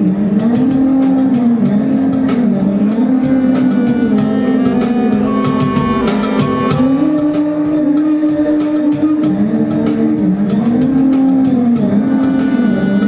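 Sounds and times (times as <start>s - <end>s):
ticking percussion beat: 0.1s - 13.0s
clarinet playing: 3.3s - 7.4s, 12.2s - 13.0s.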